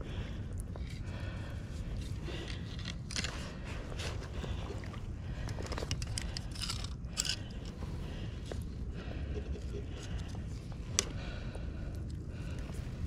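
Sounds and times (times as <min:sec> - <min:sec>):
crackly rustling and scraping: 0:00.0 - 0:13.0
steady low rumble: 0:00.0 - 0:13.0.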